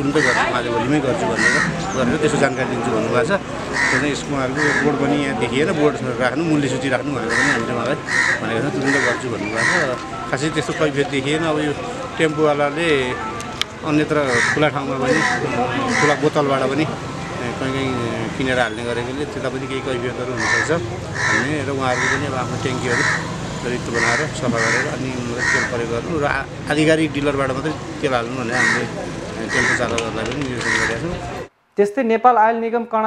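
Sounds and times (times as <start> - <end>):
another man's voice: 0.0 - 31.5
man speaking: 0.0 - 31.5
bird's harsh call: 20.4 - 22.3.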